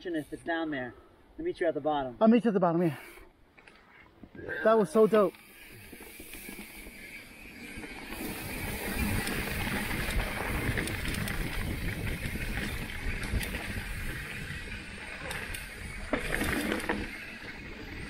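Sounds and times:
bike clicks and rattles: 5.0s - 18.0s
tyres rumbling over dirt: 5.4s - 18.0s
wind rushing over microphone: 8.3s - 16.1s.

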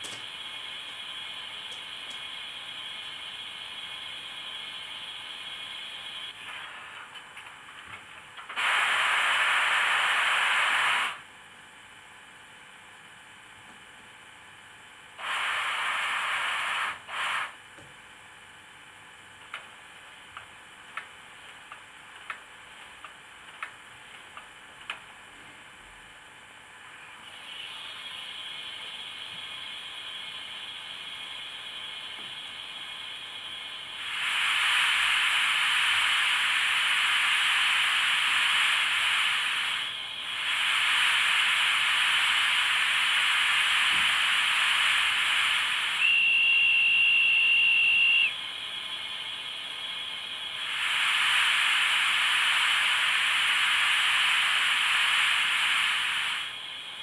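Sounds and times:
steam hissing: 8.6s - 11.2s, 15.2s - 17.6s, 31.8s - 48.3s, 50.3s - 57.0s
steam whistle blast: 45.8s - 48.4s.

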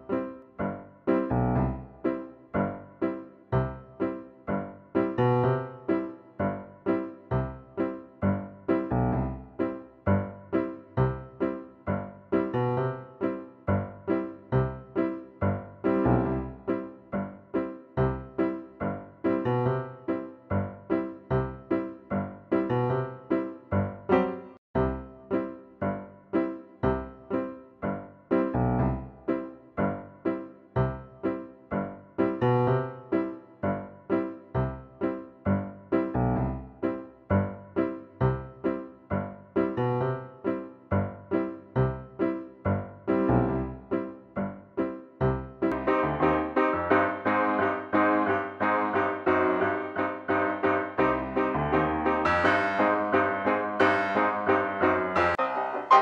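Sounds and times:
piano music: 0.0s - 56.0s.

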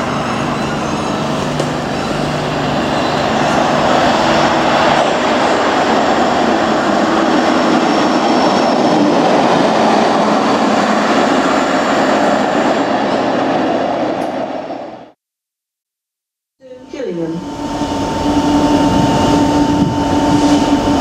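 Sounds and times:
locomotive rumbling past: 0.0s - 15.2s, 16.8s - 21.0s.

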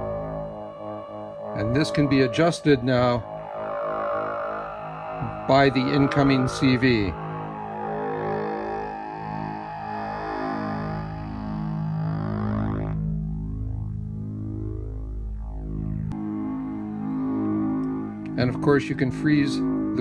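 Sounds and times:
synthesizer tone: 0.0s - 20.0s.

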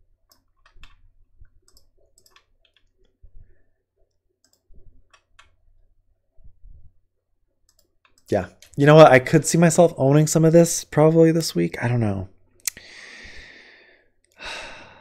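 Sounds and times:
computer mouse clicks: 0.3s - 3.2s, 4.1s - 5.6s, 7.6s - 8.8s.

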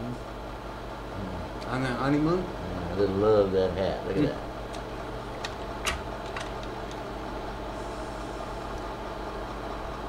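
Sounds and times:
projector fan hum: 0.0s - 10.0s.

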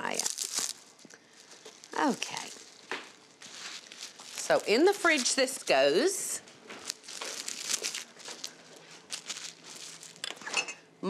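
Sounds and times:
plastic wrap crinkling: 0.0s - 10.5s.

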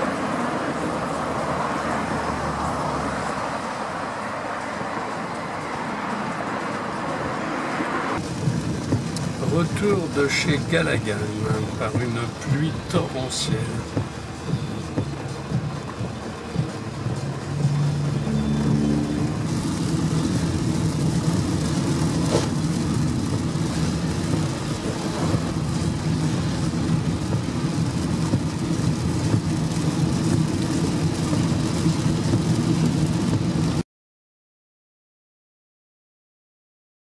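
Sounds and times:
car engine: 0.0s - 33.8s
rain on car: 0.0s - 33.8s
tyres on wet road: 0.0s - 33.8s.

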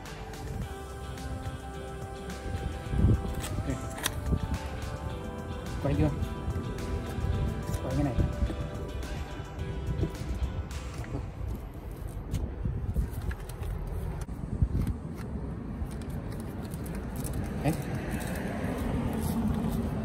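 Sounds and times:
wind rumble on microphone: 2.4s - 4.8s, 5.9s - 20.0s.

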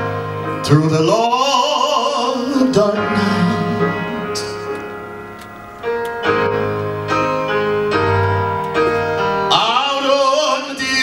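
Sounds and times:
held instrumental chords: 0.0s - 11.0s.

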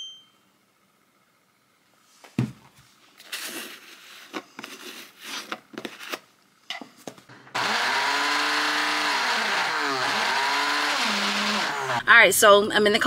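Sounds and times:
blender motor running: 7.5s - 12.1s.

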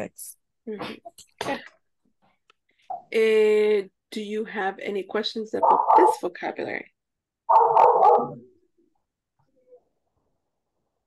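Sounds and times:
dog barking: 5.6s - 6.2s, 7.5s - 8.4s.

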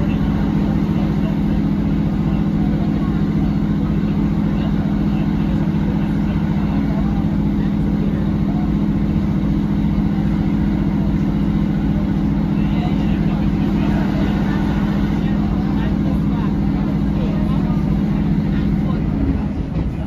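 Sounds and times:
diesel engine drone: 0.0s - 20.0s
wheel and track noise: 0.0s - 20.0s.

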